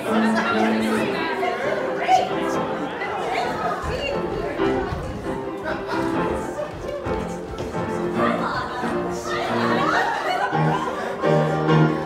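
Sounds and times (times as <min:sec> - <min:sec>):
piano music: 0:00.0 - 0:12.0
voices chattering: 0:00.0 - 0:12.0.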